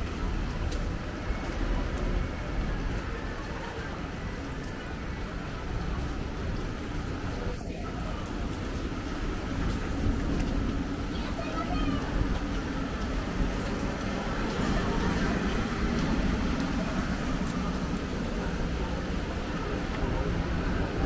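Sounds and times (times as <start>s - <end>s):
faint voices: 0.0s - 21.0s
traffic on wet road: 0.0s - 21.0s.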